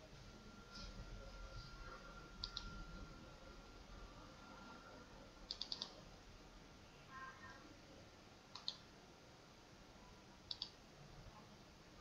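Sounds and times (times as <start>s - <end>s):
faint tone: 0.0s - 6.0s
computer mouse button clicking: 5.5s - 5.9s, 8.6s - 8.8s, 10.5s - 10.7s.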